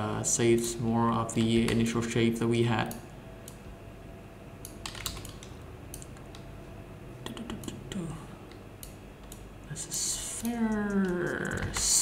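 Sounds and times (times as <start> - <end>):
steady low hum: 0.0 - 12.0
computer keyboard typing: 4.7 - 6.4, 10.4 - 12.0.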